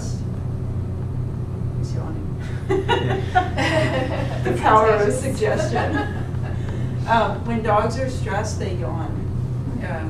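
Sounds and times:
low-pitched hum: 0:00.0 - 0:10.0.

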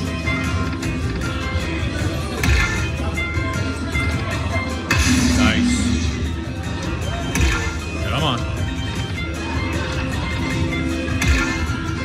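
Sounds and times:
slot machine bonus music: 0:04.8 - 0:08.6.

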